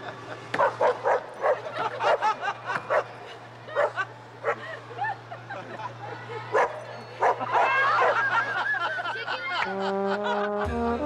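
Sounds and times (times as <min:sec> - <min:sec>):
dog yipping and barking: 0:00.6 - 0:02.2.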